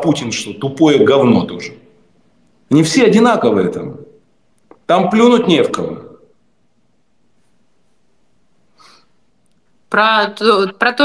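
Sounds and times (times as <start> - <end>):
man speaking: 0.0 - 2.0, 2.7 - 4.2, 4.8 - 6.3
faint room hiss: 0.0 - 11.0.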